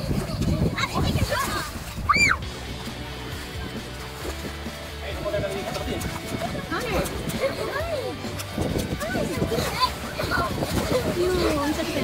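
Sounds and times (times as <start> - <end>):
children's voices: 0.0 - 2.4, 8.8 - 12.0
water sloshing: 0.0 - 12.0
child squealing: 2.0 - 2.4.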